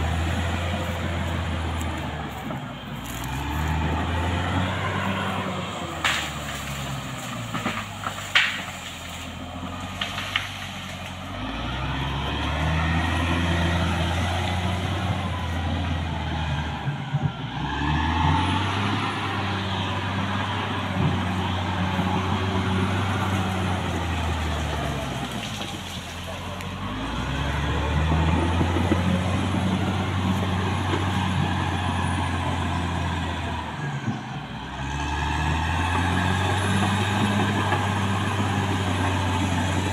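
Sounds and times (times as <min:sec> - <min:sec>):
bulldozer diesel engine revving: 0:00.0 - 0:39.9.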